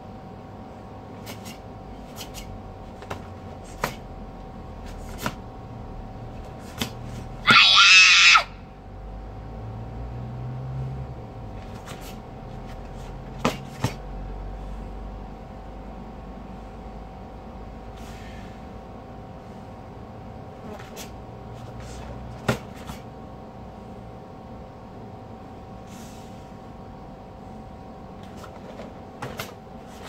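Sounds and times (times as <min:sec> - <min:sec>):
person shouting kiai: 0:07.4 - 0:08.6.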